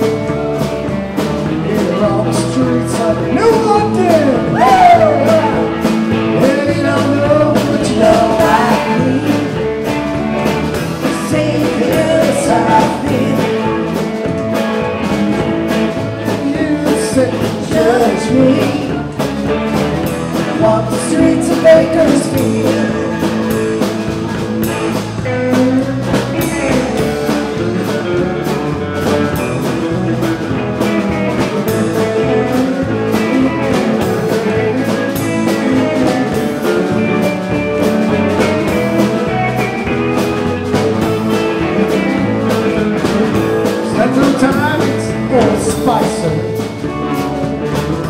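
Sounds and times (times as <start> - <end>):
drum kit: 0.0 - 48.0
electric guitars: 0.0 - 48.0
person singing: 1.2 - 14.4, 15.6 - 29.8, 30.8 - 47.8.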